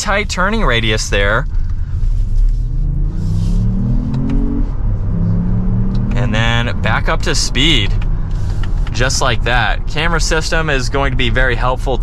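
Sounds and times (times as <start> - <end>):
car engine accelerating: 0.0 - 12.0.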